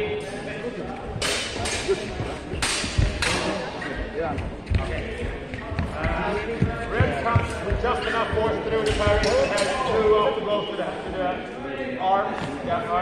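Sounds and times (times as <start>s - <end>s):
footsteps on hall floor: 0.4s - 9.8s.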